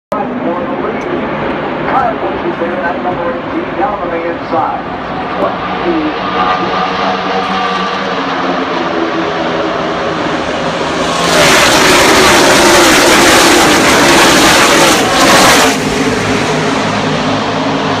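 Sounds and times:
race car engines roaring past: 0.1s - 18.0s.

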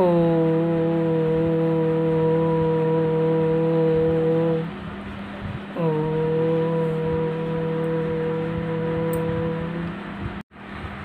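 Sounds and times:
person chanting om: 0.0s - 4.8s, 5.7s - 10.3s.

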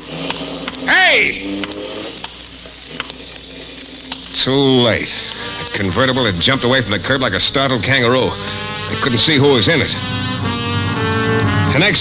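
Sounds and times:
record surface crackle: 0.0s - 12.0s.

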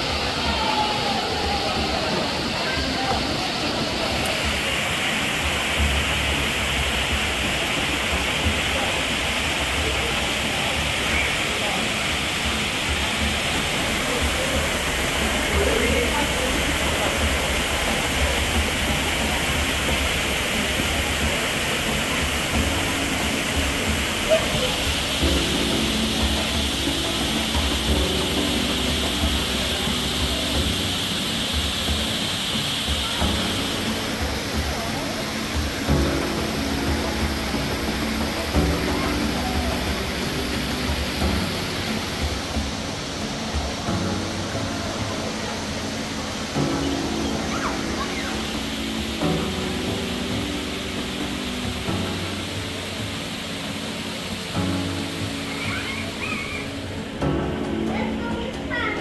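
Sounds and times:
music of held notes: 0.0s - 59.0s
waterfall rushing: 0.0s - 59.0s.

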